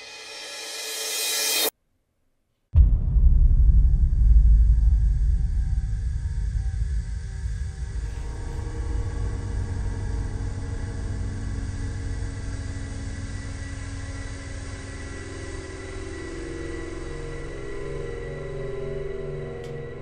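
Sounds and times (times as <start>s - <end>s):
low rumbling drone: 2.8s - 20.0s.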